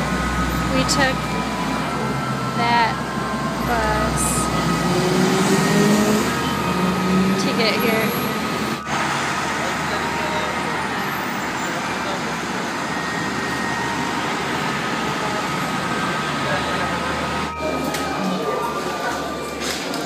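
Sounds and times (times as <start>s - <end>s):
heavy road traffic: 0.0s - 20.0s.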